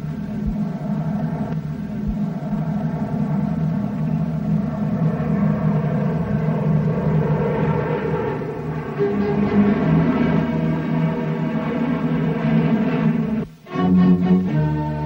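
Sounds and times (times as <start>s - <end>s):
bomber aircraft droning overhead: 0.0s - 15.0s.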